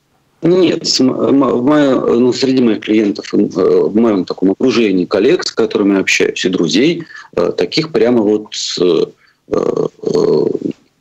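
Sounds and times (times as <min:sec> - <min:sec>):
man's drawn-out hesitation sounds: 0:00.4 - 0:10.8.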